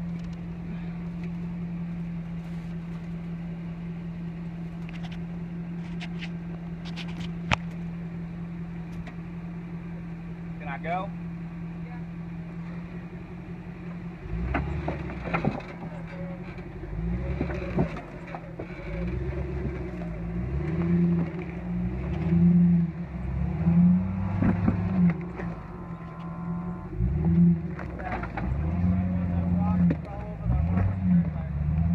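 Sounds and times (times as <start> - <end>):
car engine revving: 12.4 - 31.9.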